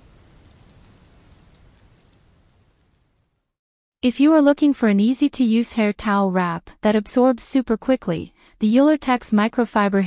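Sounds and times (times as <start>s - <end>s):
steady hiss with fine crackles: 0.0s - 3.5s.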